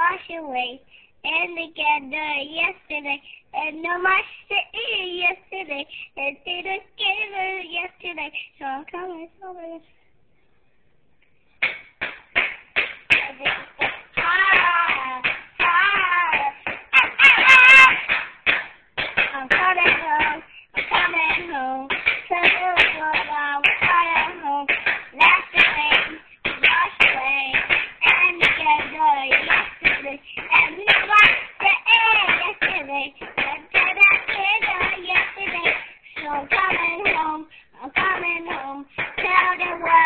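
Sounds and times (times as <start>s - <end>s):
child singing: 0.0s - 9.9s, 13.1s - 40.0s
child breathing: 5.9s - 6.2s, 20.4s - 20.8s, 35.8s - 36.2s, 37.4s - 37.8s.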